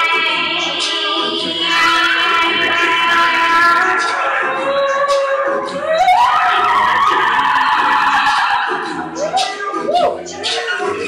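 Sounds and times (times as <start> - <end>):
looped vocal backing: 0.0 - 11.0
loud held vocal into microphone: 0.0 - 11.0.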